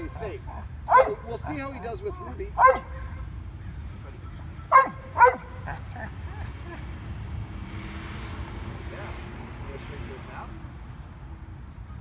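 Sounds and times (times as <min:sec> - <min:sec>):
dog whining yips: 0:04.3 - 0:05.5.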